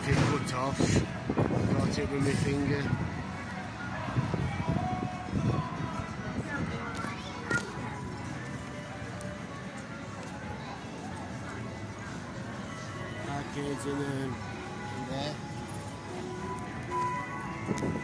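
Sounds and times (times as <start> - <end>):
background music: 0.0 - 18.0
people's voices: 0.0 - 18.0.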